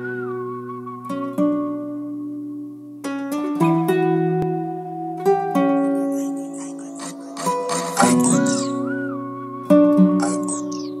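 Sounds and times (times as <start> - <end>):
acoustic guitar melody: 0.0 - 11.0
held low tone: 5.7 - 9.2.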